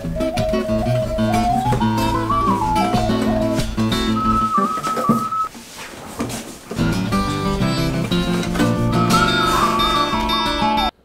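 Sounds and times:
person whistling a high note: 0:00.0 - 0:05.5, 0:09.0 - 0:10.9.

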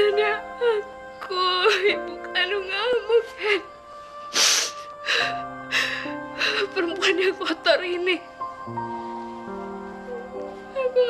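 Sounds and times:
woman crying with gasping sobs: 0:00.0 - 0:07.8
music with held low notes: 0:00.0 - 0:11.0.

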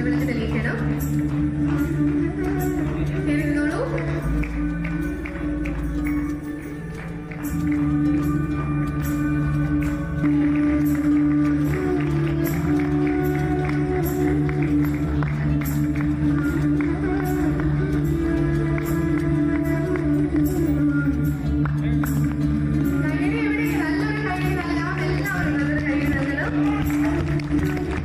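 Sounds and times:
instrumental music with drone: 0:00.0 - 0:28.0.

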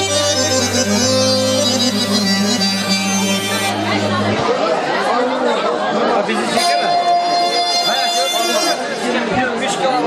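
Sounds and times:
steady tone: 0:00.0 - 0:04.8
accordion dance music: 0:00.0 - 0:04.9, 0:06.1 - 0:09.9
crowd chattering: 0:00.0 - 0:10.0.

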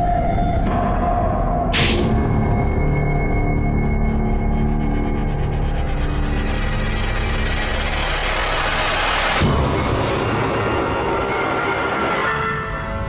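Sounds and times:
dramatic background music: 0:00.0 - 0:13.0.

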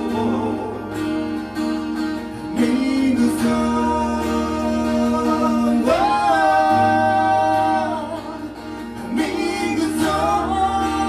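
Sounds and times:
men singing: 0:00.0 - 0:01.5, 0:02.2 - 0:11.0
acoustic guitar: 0:00.0 - 0:11.0.

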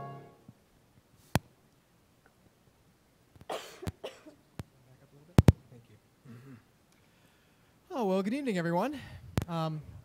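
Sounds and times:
person coughing: 0:03.5 - 0:04.4.

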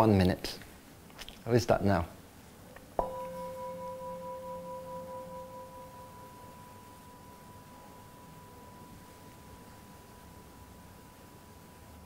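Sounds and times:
singing bowl struck and ringing: 0:03.0 - 0:12.0.

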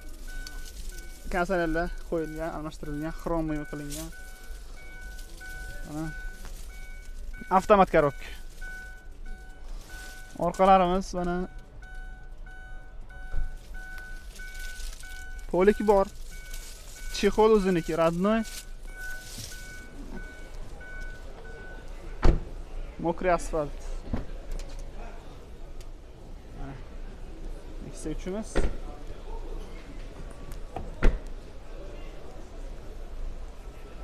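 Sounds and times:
faint electronic beep: 0:00.0 - 0:22.3
car door shutting thud: 0:22.2 - 0:22.5.

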